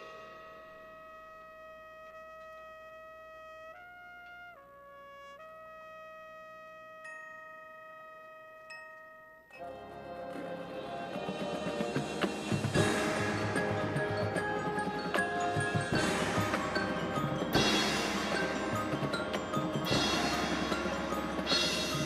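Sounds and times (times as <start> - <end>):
marching band playing: 10.4 - 22.0.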